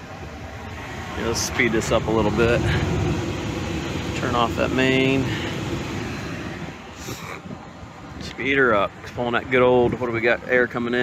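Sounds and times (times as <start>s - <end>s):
air unit blower rushing: 0.1s - 7.2s.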